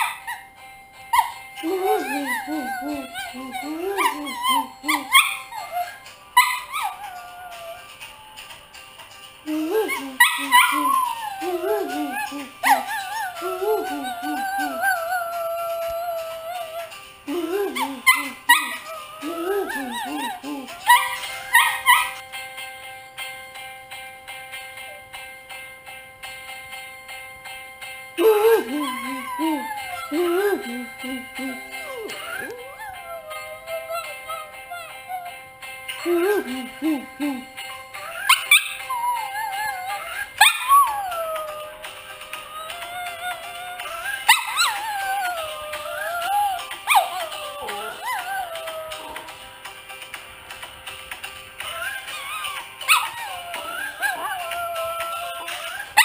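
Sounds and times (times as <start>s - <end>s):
music: 0.0s - 56.0s
small dog howling: 1.2s - 8.5s, 9.5s - 22.2s, 28.2s - 35.4s, 38.0s - 49.4s, 51.6s - 56.0s.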